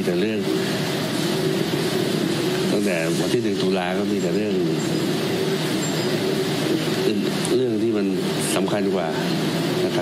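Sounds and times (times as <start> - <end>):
constant low hum: 0.0 - 10.0
machinery running hiss: 0.0 - 10.0.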